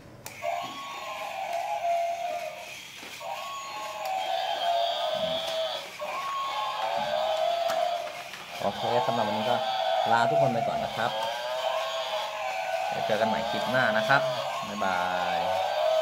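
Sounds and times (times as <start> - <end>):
toy electronic sound effect: 0.4 - 16.0.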